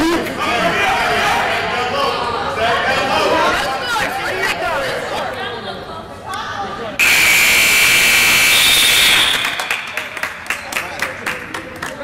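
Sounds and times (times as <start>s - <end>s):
crowd chatter: 0.0s - 7.1s
scoreboard buzzer blast: 7.0s - 9.6s.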